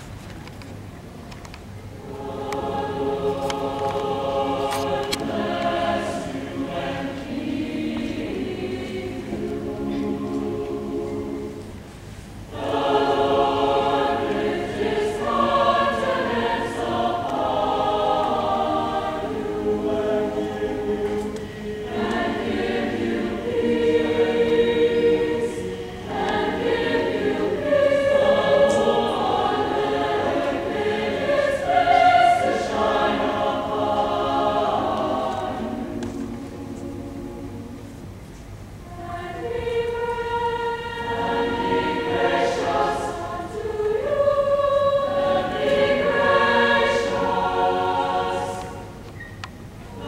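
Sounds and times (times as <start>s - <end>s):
mixed choir singing: 2.0s - 38.2s, 38.8s - 49.2s, 49.8s - 50.0s
singers breathing: 21.3s - 21.8s.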